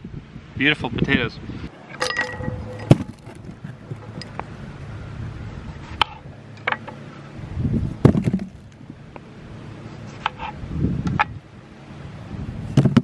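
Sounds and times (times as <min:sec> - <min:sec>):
low steady rumble: 0:01.3 - 0:13.0
potatoes dropping into cardboard box: 0:08.0 - 0:08.6, 0:12.8 - 0:13.0.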